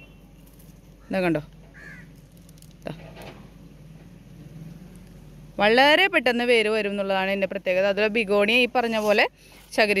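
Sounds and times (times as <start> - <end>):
faint bird calls: 0.0 - 2.2.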